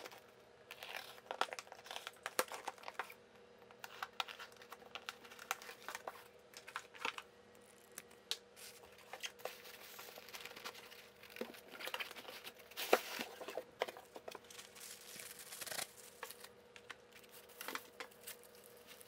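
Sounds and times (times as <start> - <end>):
plastic wrapping crinkling: 8.6 - 19.0.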